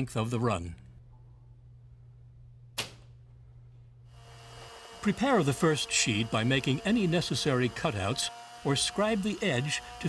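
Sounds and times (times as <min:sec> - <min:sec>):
faint low hum: 0:00.1 - 0:04.1.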